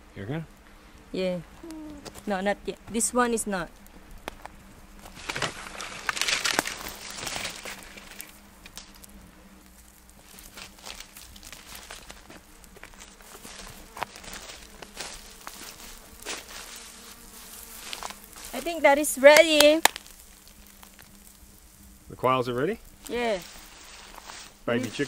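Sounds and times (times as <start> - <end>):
footsteps on dry leaves: 3.7 - 22.1, 22.8 - 25.0.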